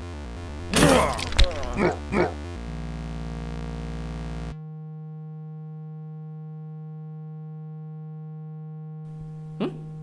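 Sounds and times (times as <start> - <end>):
steady electronic hum: 0.0 - 10.0.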